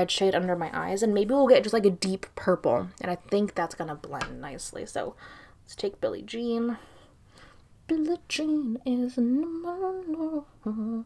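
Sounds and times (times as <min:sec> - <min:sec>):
woman humming: 0:10.0 - 0:11.0.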